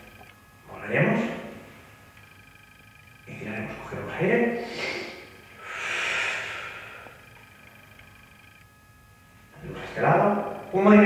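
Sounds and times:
man breathing deeply: 0:04.6 - 0:07.3.

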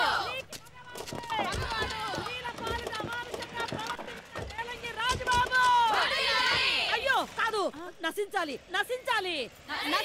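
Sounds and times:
crowd shouting slogans: 0:00.0 - 0:00.5, 0:05.4 - 0:07.2
footsteps of people running: 0:00.5 - 0:06.8.

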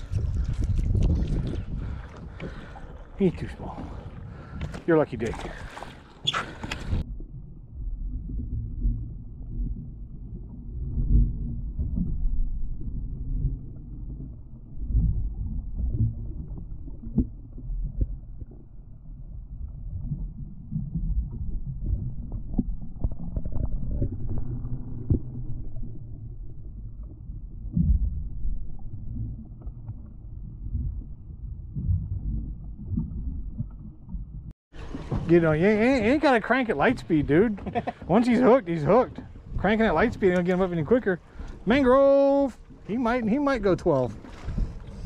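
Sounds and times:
muffled water sloshing against hull: 0:00.0 - 0:45.0.

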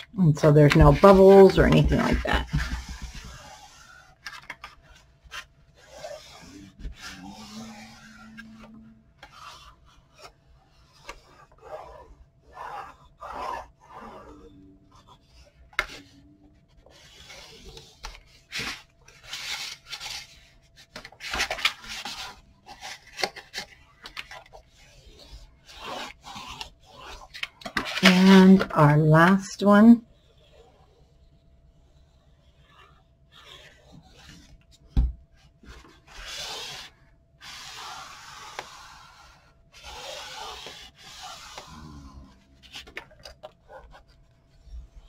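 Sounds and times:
bone folder scraping cardstock: 0:00.6 - 0:14.4, 0:35.6 - 0:41.9.

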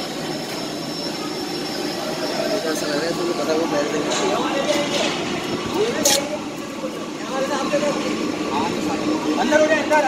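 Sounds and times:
men's voices talking: 0:02.1 - 0:10.0.

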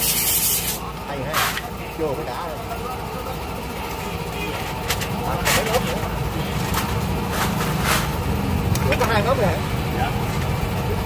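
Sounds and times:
engine running low rumble: 0:00.1 - 0:11.0
faint voices: 0:00.7 - 0:06.8.

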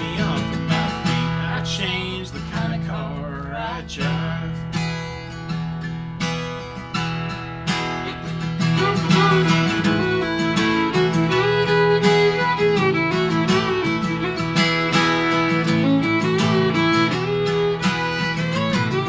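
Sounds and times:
acoustic guitar strumming: 0:00.0 - 0:19.0
fiddle melody: 0:00.0 - 0:19.0.

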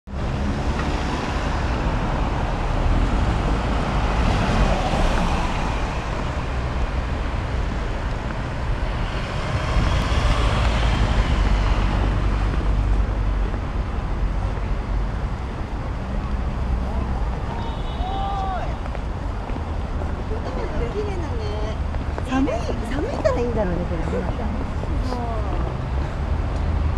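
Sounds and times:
city traffic rumble: 0:00.0 - 0:26.9.

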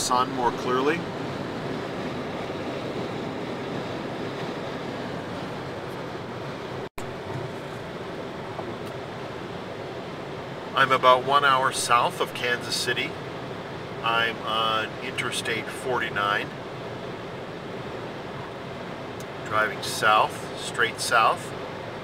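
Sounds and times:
road and tyre noise in car: 0:00.0 - 0:22.0.

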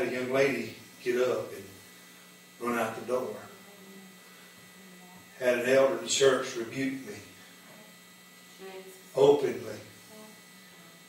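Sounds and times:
man talking: 0:00.0 - 0:01.8, 0:02.6 - 0:03.5, 0:05.4 - 0:07.3, 0:09.2 - 0:09.9
electrical mains hum: 0:00.0 - 0:11.0.

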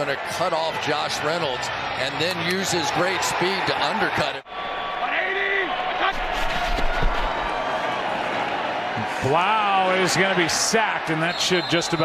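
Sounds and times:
stadium crowd hum: 0:00.0 - 0:12.0.

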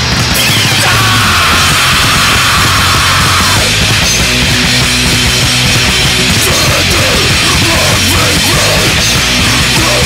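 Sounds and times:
hardcore punk band playing: 0:00.0 - 0:10.0.

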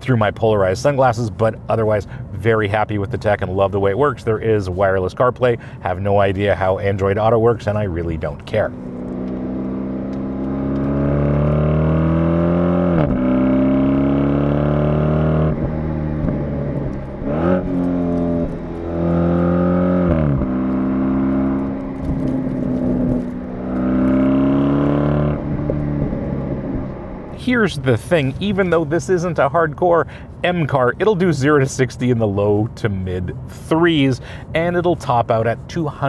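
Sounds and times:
car engine accelerating hard: 0:08.5 - 0:28.8.

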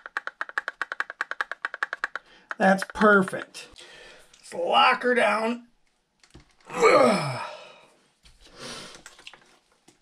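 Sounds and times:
man sighing loudly: 0:06.7 - 0:07.9.

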